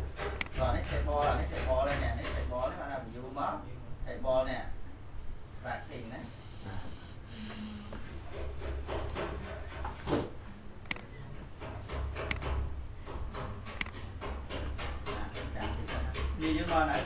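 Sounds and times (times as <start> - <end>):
low steady hum: 0.0 - 8.8
computer mouse clicks: 0.4 - 1.0, 10.8 - 11.2, 12.3 - 12.6, 13.7 - 14.0.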